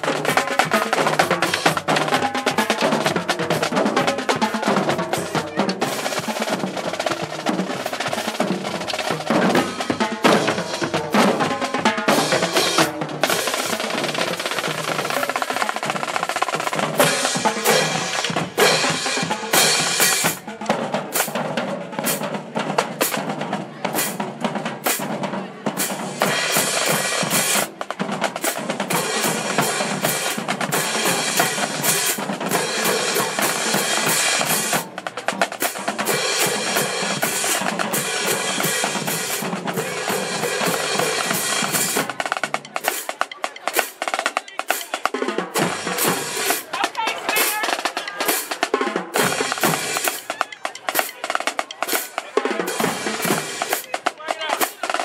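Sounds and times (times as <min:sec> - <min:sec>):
snare drums: 0:00.0 - 0:55.0.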